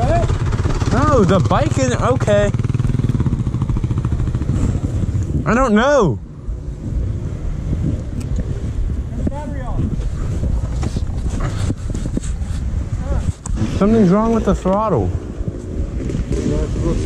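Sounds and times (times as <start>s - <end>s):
motorcycle engine low rumble: 0.0s - 17.0s
wind noise on microphone: 0.0s - 17.0s.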